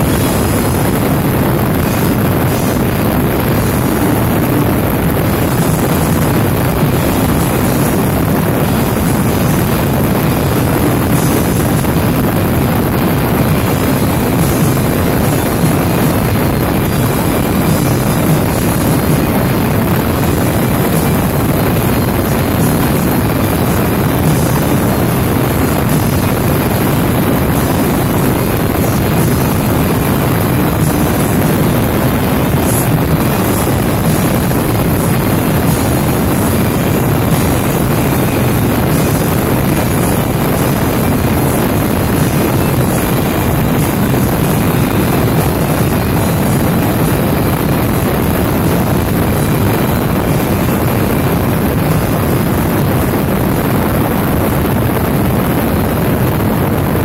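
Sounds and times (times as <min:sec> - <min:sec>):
motorcycle engine: 0:00.0 - 0:53.1
wind rushing: 0:00.0 - 0:56.6.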